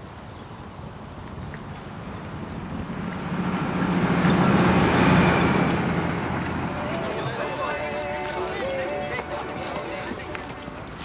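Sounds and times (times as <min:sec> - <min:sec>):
truck passing on highway: 0:01.3 - 0:11.0.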